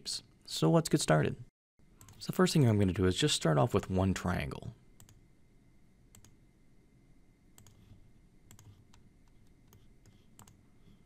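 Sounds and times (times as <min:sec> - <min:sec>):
computer mouse clicks: 0:05.0 - 0:05.2, 0:06.1 - 0:06.4, 0:07.6 - 0:11.0.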